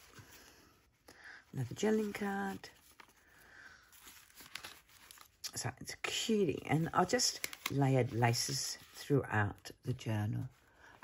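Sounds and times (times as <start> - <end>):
journal pages rustling: 0.0 - 10.6.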